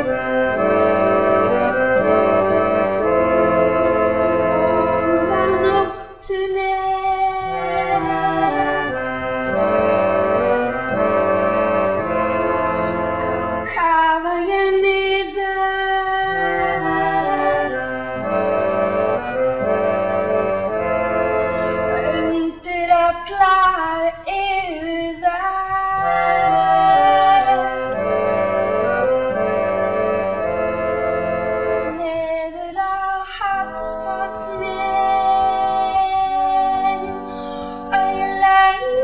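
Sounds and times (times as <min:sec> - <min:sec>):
person singing: 0:00.0 - 0:11.2, 0:11.8 - 0:18.6, 0:21.6 - 0:28.6, 0:31.9 - 0:39.0
organ-like keyboard chords: 0:00.0 - 0:39.0.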